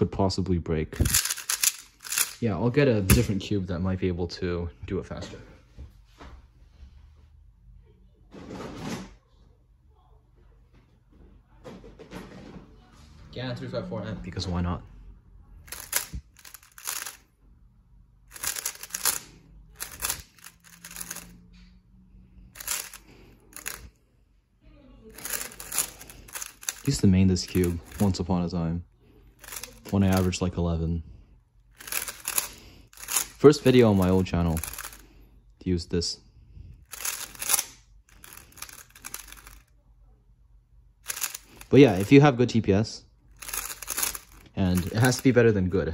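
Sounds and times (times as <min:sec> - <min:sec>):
plastic puzzle cube clacking: 0:01.0 - 0:02.4, 0:03.1 - 0:03.4, 0:15.7 - 0:17.2, 0:18.3 - 0:21.3, 0:22.6 - 0:23.9, 0:25.1 - 0:28.2, 0:29.4 - 0:30.4, 0:31.8 - 0:35.0, 0:36.8 - 0:39.7, 0:41.0 - 0:42.2, 0:43.4 - 0:45.3
speedcube plastic clicking: 0:01.0 - 0:02.4, 0:15.7 - 0:17.2, 0:18.3 - 0:21.3, 0:22.6 - 0:23.8, 0:25.2 - 0:28.2, 0:29.4 - 0:30.4, 0:31.8 - 0:35.0, 0:36.9 - 0:39.6, 0:41.1 - 0:42.1, 0:43.4 - 0:45.3.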